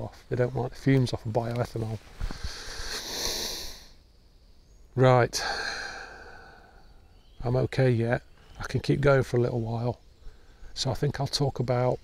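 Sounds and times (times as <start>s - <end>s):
man breathing out through nose: 2.2s - 4.0s, 5.4s - 7.0s.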